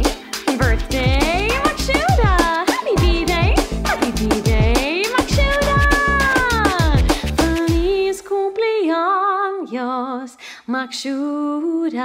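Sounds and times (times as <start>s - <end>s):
celebration song with drum beat: 0.0s - 8.0s
steady drum beat: 0.0s - 8.0s.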